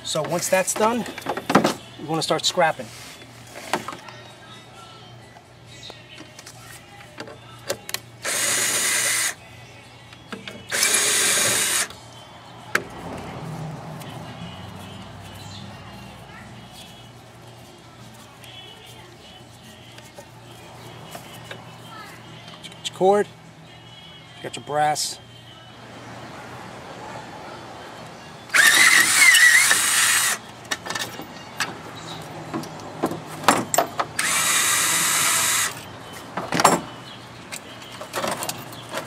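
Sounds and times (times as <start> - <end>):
power drill bursts: 8.2 - 9.4, 10.7 - 11.9, 28.5 - 30.4, 34.2 - 35.7.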